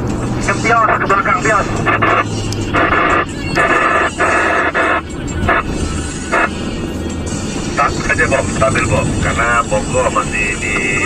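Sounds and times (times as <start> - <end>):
low engine hum inside car: 0.0 - 11.0
crackly two-way radio transmission: 0.4 - 6.6, 7.8 - 11.0.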